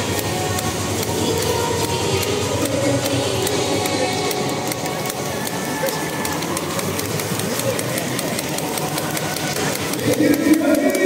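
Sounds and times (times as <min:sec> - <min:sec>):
crowd noise: 0:00.0 - 0:11.0
crowd applause: 0:03.5 - 0:11.0.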